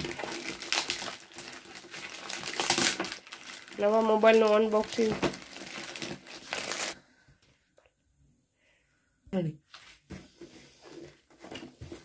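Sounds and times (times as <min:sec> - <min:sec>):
plastic mailer bag crinkling: 0:00.0 - 0:07.0.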